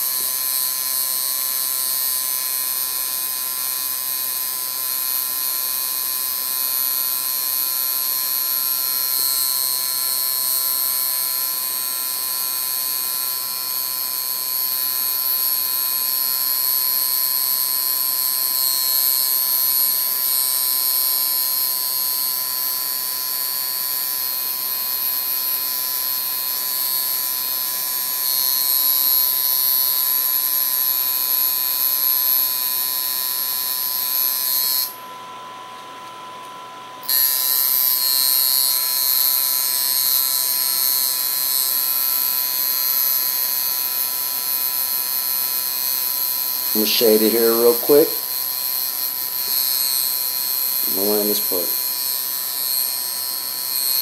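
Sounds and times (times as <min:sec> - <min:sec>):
tattoo machine buzzing: 0:00.0 - 0:54.0.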